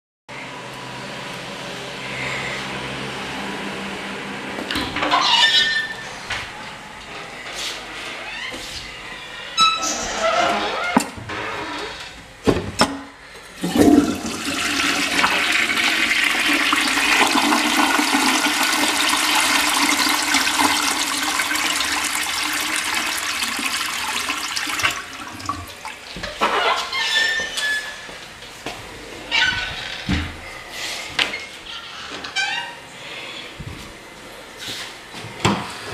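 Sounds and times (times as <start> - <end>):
toilet flushing water rush: 13.6 - 26.1.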